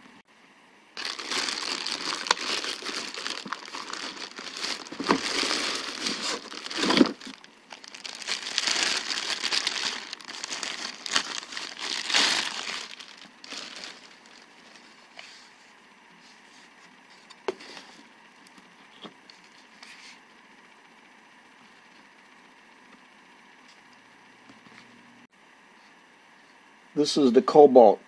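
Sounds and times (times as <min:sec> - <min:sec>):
plastic bag crinkling: 0:01.0 - 0:15.0.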